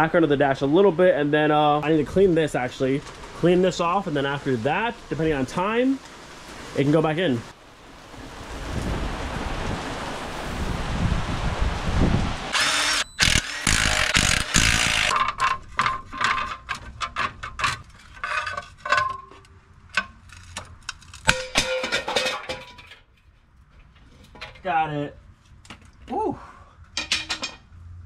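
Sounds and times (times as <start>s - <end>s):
steady rain: 0.3s - 12.6s
power tool running in bursts: 12.5s - 15.1s
sharp metallic clicks and clanks: 12.6s - 23.0s.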